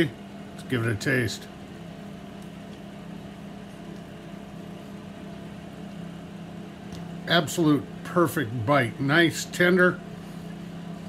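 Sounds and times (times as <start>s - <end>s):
steady machine hum: 0.0s - 11.0s.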